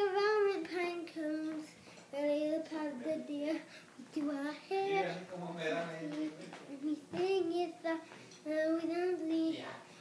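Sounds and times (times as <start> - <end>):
girl singing: 0.0 - 5.2, 6.0 - 9.8.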